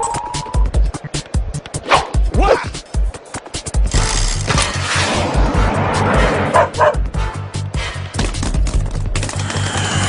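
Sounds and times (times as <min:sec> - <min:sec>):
cartoon music with steady beat: 0:00.0 - 0:04.4, 0:05.4 - 0:09.1.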